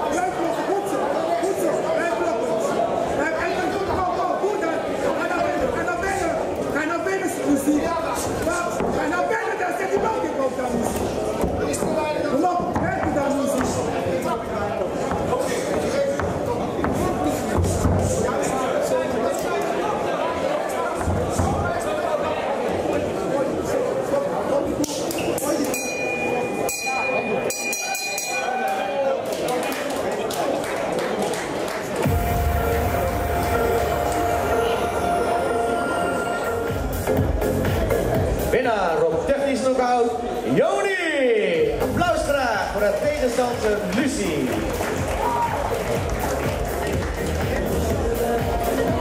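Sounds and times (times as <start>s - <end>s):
spectators shouting and chatting: 0.0s - 49.0s
loud bass-heavy music: 32.0s - 38.6s, 41.7s - 42.8s, 44.6s - 49.0s.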